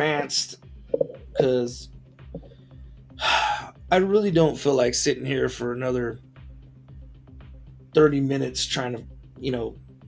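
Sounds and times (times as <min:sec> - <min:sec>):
man speaking: 0:01.2 - 0:01.9.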